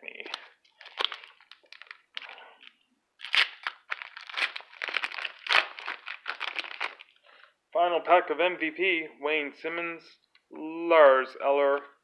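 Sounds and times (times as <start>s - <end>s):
foil wrapper crinkling and tearing: 0.3s - 2.4s, 3.2s - 7.1s.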